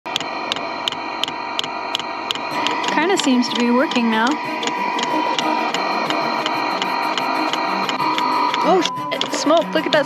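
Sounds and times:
heater whine: 0.1s - 10.0s.

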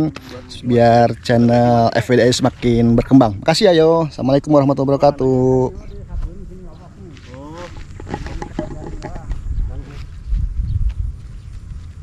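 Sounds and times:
rumbling on microphone: 5.6s - 12.0s.

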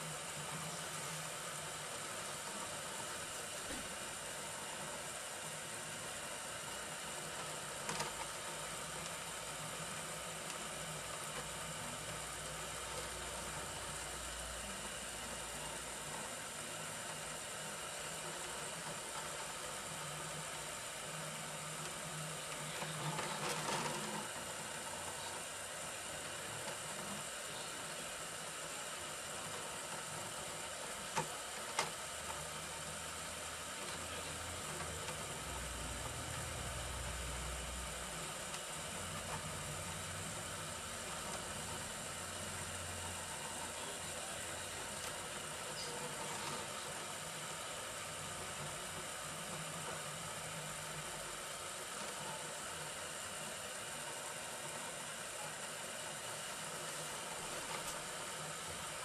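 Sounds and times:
printer motors humming: 0.0s - 59.0s.

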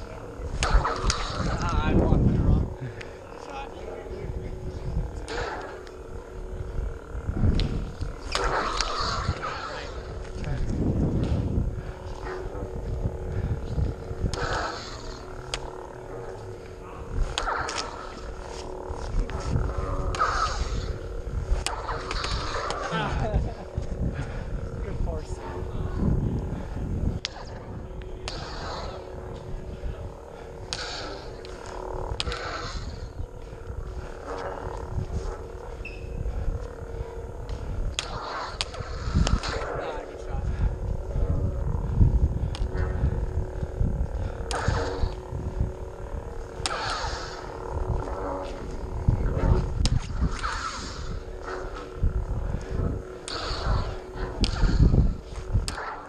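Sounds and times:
lightsaber hum: 0.0s - 56.0s
lightsaber swing whooshes: 0.1s - 2.7s, 7.2s - 23.9s, 27.1s - 35.9s, 37.8s - 41.5s, 42.2s - 56.0s
lightsaber clash cracks: 0.5s - 1.8s, 28.2s - 29.0s, 30.7s - 33.1s, 46.5s - 48.3s, 53.2s - 54.9s, 55.6s - 56.0s.

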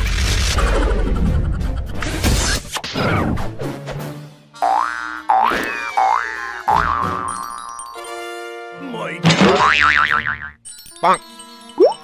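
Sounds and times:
cartoon music: 11.8s - 12.0s.

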